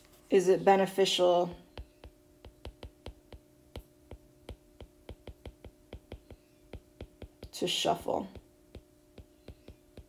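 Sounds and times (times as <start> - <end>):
faint steady hum: 0.0 - 10.0
stylus tapping on glass screen: 1.6 - 7.6, 8.3 - 10.0.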